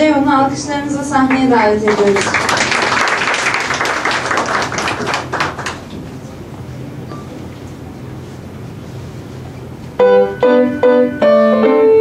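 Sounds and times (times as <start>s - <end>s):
audience applauding: 1.8s - 6.0s.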